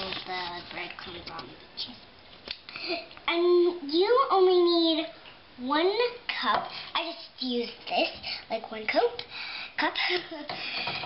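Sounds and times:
young girl talking: 0.0s - 2.0s, 2.8s - 10.5s.

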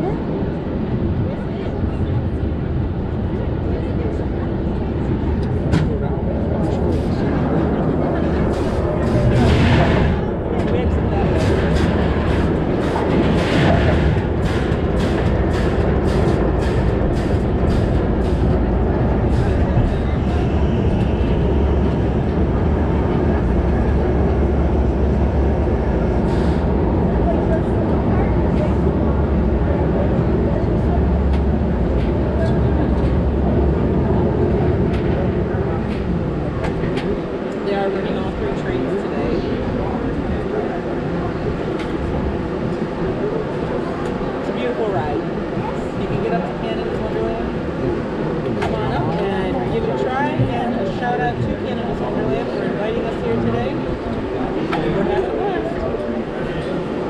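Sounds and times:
roller coaster wheels rumbling: 0.0s - 57.0s.

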